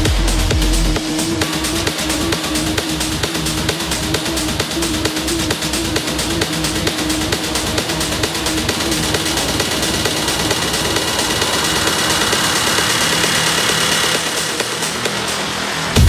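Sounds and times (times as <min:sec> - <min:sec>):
hard techno kick drum: 0:00.0 - 0:16.0
noisy droning breakdown: 0:00.0 - 0:16.0.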